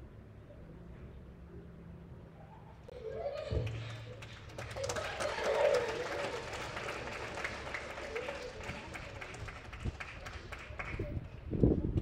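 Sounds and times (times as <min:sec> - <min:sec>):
children's voices: 0:02.9 - 0:03.6
hand clapping: 0:03.6 - 0:11.1.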